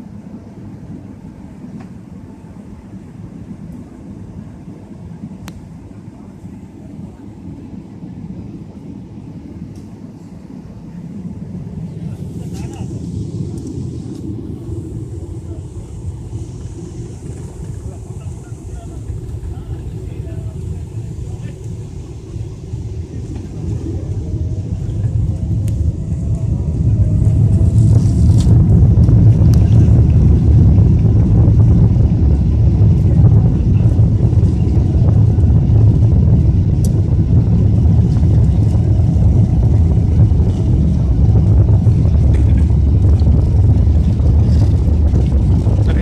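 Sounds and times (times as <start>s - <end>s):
jet engines rumbling in cabin: 0.0s - 46.0s
jet engines whining and roaring: 0.0s - 46.0s.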